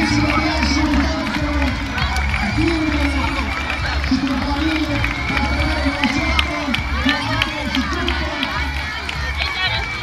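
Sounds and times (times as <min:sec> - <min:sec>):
crowd talking: 0:00.0 - 0:10.0
faint background music: 0:00.0 - 0:10.0.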